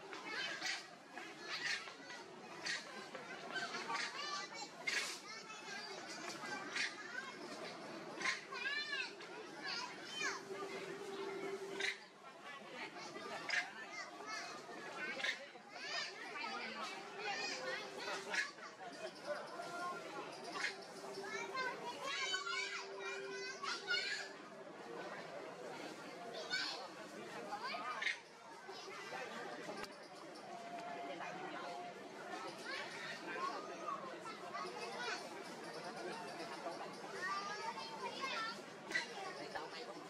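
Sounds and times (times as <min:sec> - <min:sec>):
high-pitched voices chattering: 0:00.0 - 0:40.0.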